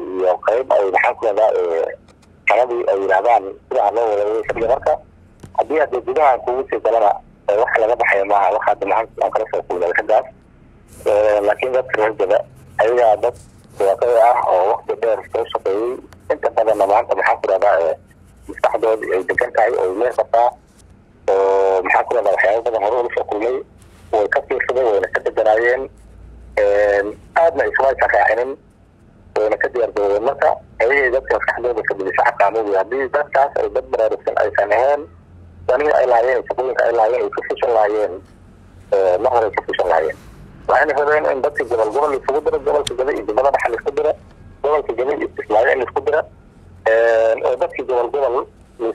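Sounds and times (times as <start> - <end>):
man speaking: 0.0 - 5.0, 5.6 - 10.3, 11.0 - 20.6, 21.3 - 25.9, 26.6 - 28.6, 29.4 - 35.1, 35.7 - 38.3, 38.9 - 46.3, 46.9 - 48.9
man talking: 0.0 - 5.0, 5.6 - 10.3, 11.0 - 20.6, 21.3 - 25.9, 26.6 - 28.6, 29.4 - 35.1, 35.7 - 38.3, 38.9 - 46.3, 46.9 - 48.9.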